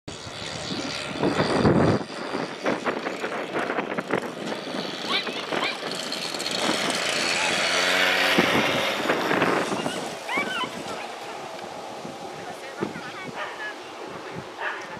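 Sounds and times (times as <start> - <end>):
lure machine motor running: 0.1 - 11.8
people shouting and calling: 9.6 - 14.9.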